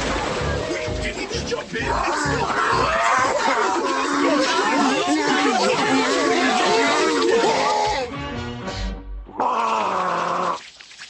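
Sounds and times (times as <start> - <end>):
overlapping voices talking: 0.0 - 8.2.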